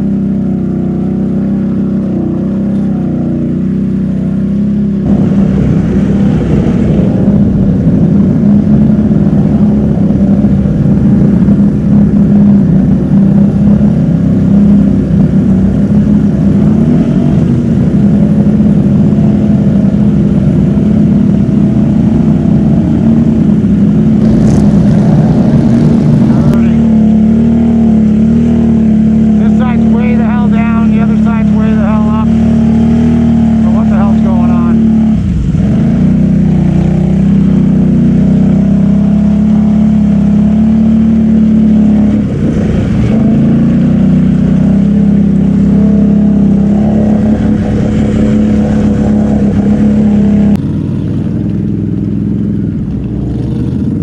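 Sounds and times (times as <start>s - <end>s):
engine running under load: 0.0s - 54.0s
churning through water and mud: 5.0s - 54.0s.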